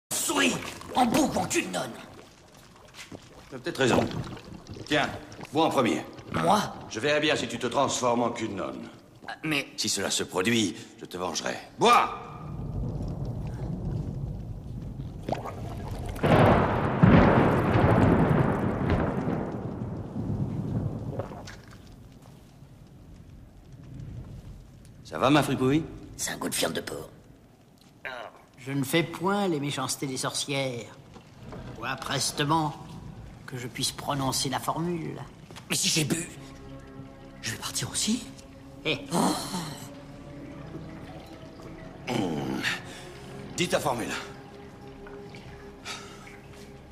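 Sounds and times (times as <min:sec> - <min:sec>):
man swallowing liquid: 0:02.2 - 0:05.5, 0:14.8 - 0:16.2, 0:21.0 - 0:22.0
rolling thunder: 0:12.2 - 0:26.1.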